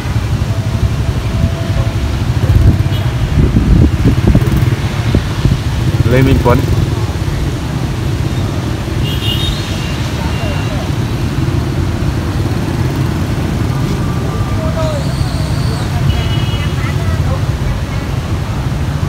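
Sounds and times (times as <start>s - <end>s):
low rumble of street traffic: 0.0s - 19.0s.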